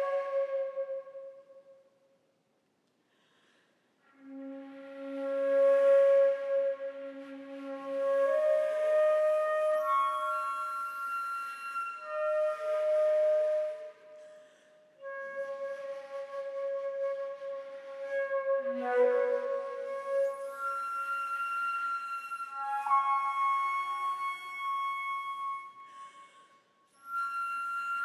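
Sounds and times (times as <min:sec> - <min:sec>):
flute holding long note: 0:00.0 - 0:01.8, 0:04.1 - 0:28.0.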